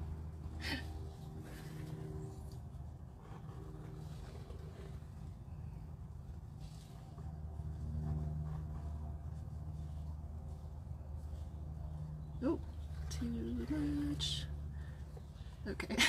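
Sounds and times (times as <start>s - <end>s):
low mechanical hum: 0.0s - 16.0s.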